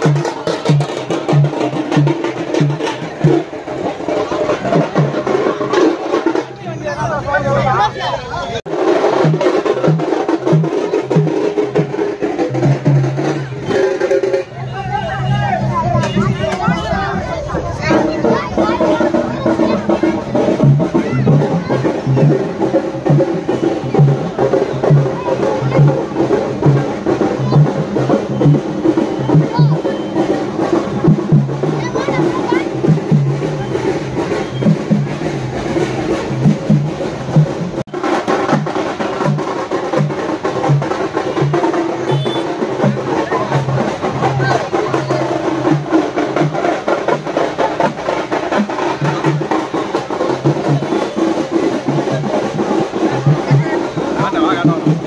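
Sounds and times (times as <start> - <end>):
crowd voices and shouts: 0.0 - 55.0
fast drum beats: 0.0 - 55.0.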